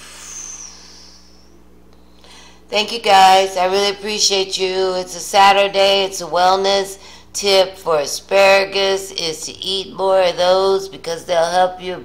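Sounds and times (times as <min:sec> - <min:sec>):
person breathing out: 0:00.0 - 0:01.5, 0:02.2 - 0:02.7
faint steady hum: 0:00.0 - 0:12.0.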